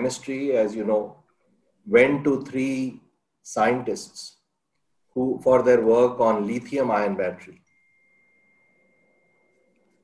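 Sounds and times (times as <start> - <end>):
faint high-pitched tone: 6.4 - 10.0.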